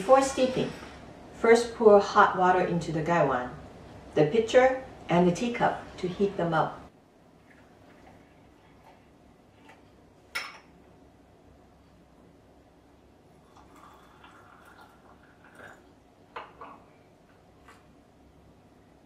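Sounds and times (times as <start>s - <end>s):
hot water pouring: 13.4s - 16.6s.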